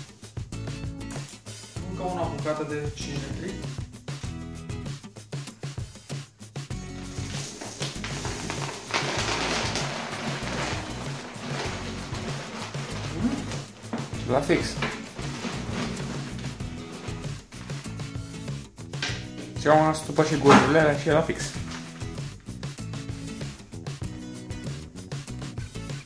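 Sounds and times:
background music with steady beat: 0.0 - 26.0
dry kibble pouring and rattling: 7.1 - 18.0, 19.9 - 22.4.

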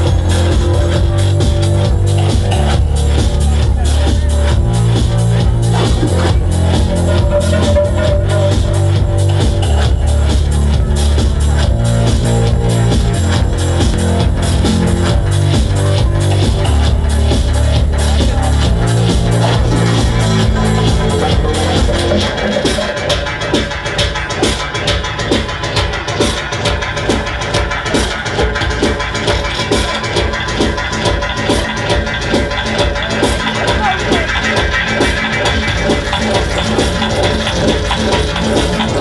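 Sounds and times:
electronic dance music: 0.0 - 39.0
heavy bassline: 0.0 - 39.0.

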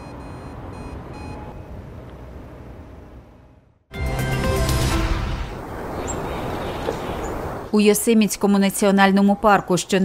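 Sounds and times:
low traffic rumble: 0.0 - 3.9, 4.8 - 10.0.

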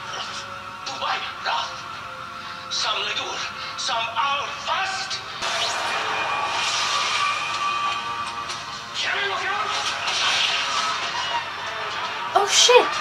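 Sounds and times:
dramatic music: 5.3 - 13.0
rush of sound effects: 5.4 - 8.3.

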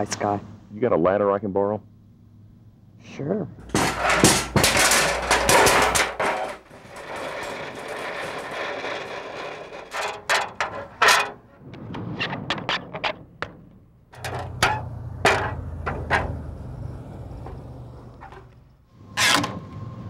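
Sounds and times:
metal stepladder clanking: 3.6 - 11.4, 14.2 - 16.4
garage door rattling and rumbling: 3.6 - 18.8.

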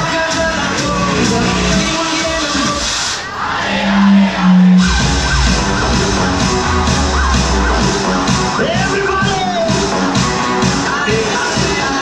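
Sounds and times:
club dance music: 0.0 - 12.0.

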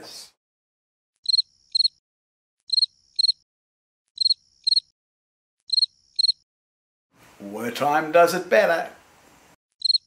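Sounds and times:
cricket chirps: 1.2 - 2.0, 2.7 - 3.4, 4.2 - 4.9, 5.7 - 6.4, 9.8 - 10.0.

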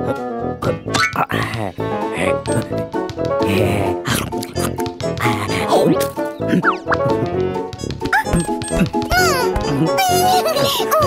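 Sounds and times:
playful cartoon music: 0.0 - 11.0.

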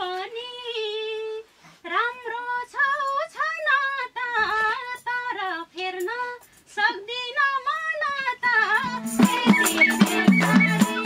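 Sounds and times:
woman singing folk song: 0.0 - 11.0.

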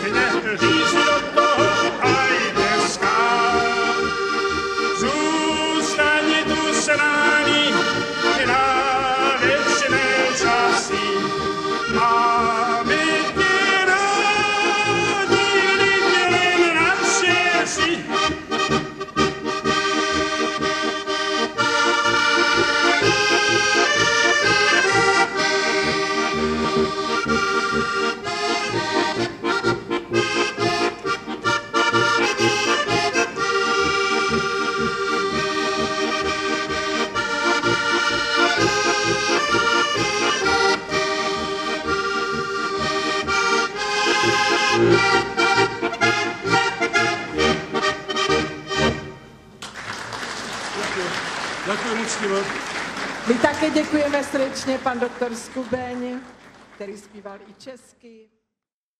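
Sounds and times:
button accordion playing polka: 0.0 - 49.5, 51.8 - 56.3.

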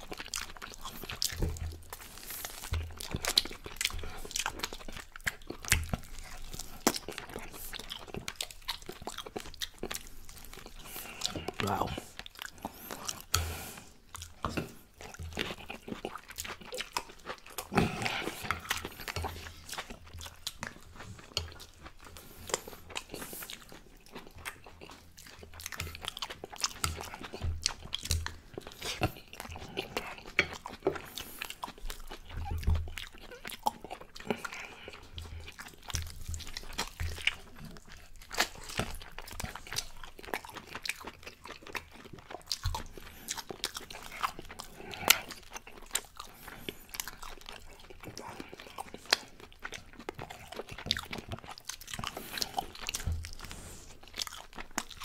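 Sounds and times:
open-mouth chewing and lip smacking: 0.0 - 55.0.

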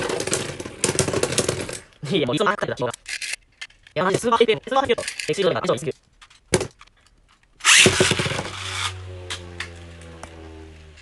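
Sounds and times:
launcher whirring zip: 7.6 - 11.0.

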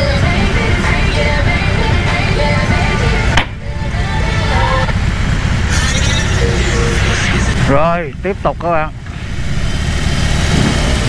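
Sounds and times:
background music: 0.0 - 10.6
motorcycle engine running low: 0.0 - 11.0.

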